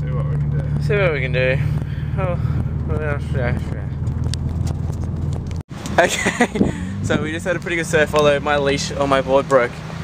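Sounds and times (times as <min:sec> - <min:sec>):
engine and road drone: 0:00.0 - 0:10.0.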